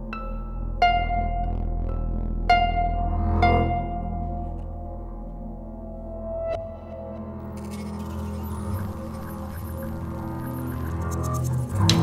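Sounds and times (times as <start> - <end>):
low drone-like tones: 0.0 - 12.0.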